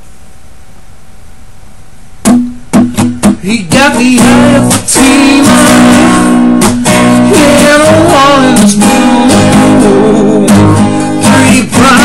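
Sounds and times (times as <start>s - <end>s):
quiet hiss: 0.0s - 12.0s
acoustic guitar strummed chords: 2.2s - 12.0s.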